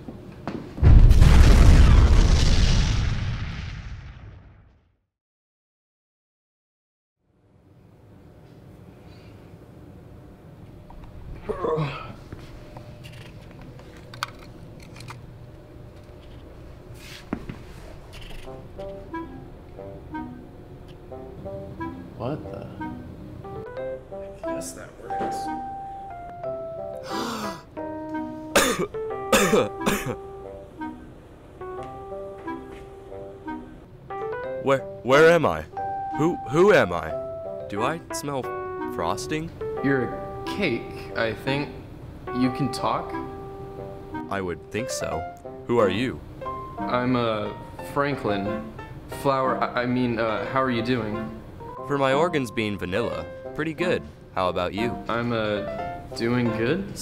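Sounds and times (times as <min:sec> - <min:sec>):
explosion boom with deep rumble: 0:00.8 - 0:04.9
keyboard background music: 0:18.2 - 0:57.0
person gasping for breath: 0:27.0 - 0:27.7
person coughing hard: 0:28.5 - 0:30.2.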